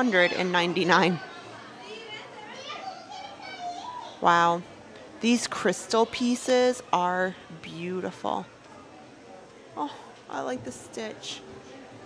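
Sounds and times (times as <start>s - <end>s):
faint background voices: 0.0s - 12.0s
child's voice: 1.8s - 4.2s.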